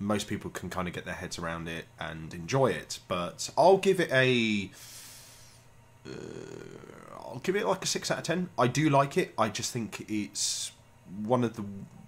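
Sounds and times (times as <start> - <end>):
man breathing faintly: 4.7 - 7.0
man saying uh: 6.1 - 7.8.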